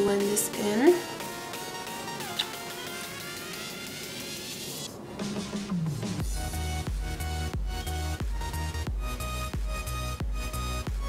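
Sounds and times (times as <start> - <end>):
electronic music with steady pulse: 0.0 - 11.0.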